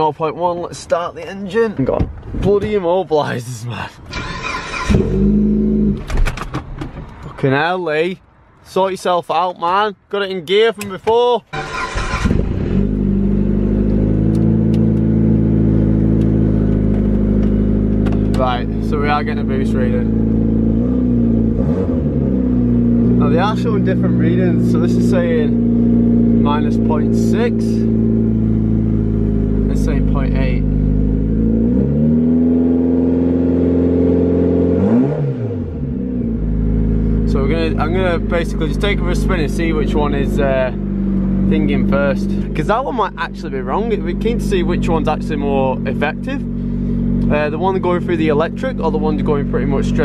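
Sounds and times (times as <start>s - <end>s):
car engine cranking: 4.0s - 7.3s, 10.8s - 23.9s
car engine idling: 11.5s - 31.6s, 35.8s - 50.0s.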